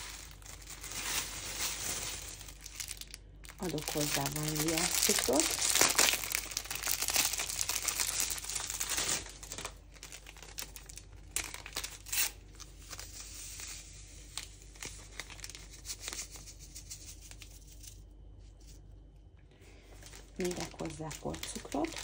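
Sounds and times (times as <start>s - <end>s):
paper sachets crinkling and tearing: 0.0s - 18.0s, 19.7s - 22.0s.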